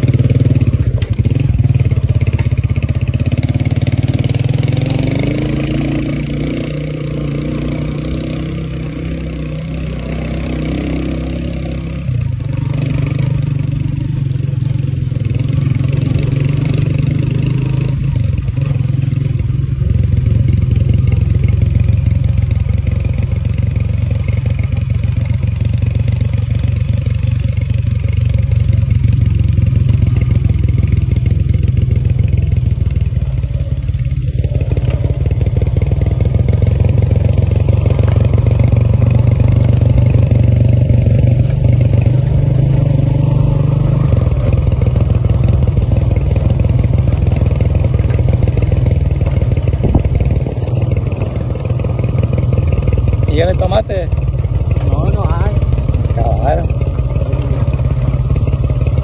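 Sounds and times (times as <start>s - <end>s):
small motorcycle engine running: 0.0s - 59.0s.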